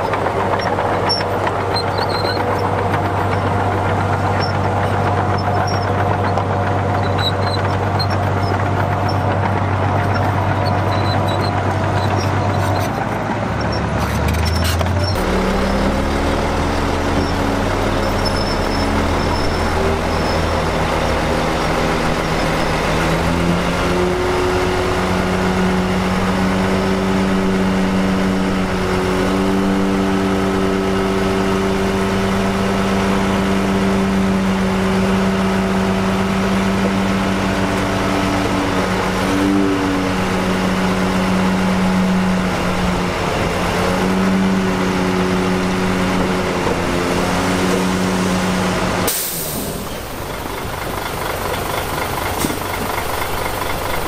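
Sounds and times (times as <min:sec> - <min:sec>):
bulldozer diesel engine under load: 0:00.0 - 0:54.0.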